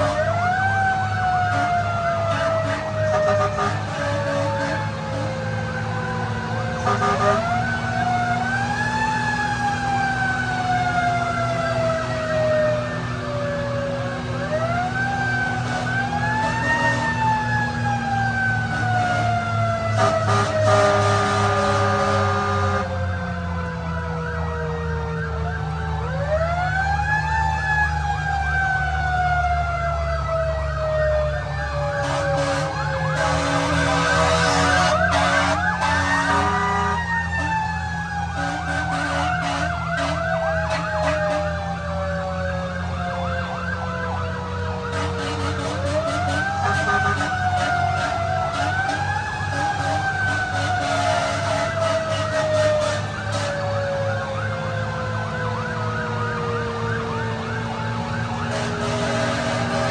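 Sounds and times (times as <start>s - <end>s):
mechanical siren wailing: 0.0s - 59.9s
horn blast: 1.4s - 5.4s, 6.8s - 7.7s, 18.7s - 23.0s, 32.0s - 37.7s, 38.3s - 41.6s, 44.8s - 53.7s, 58.4s - 59.9s.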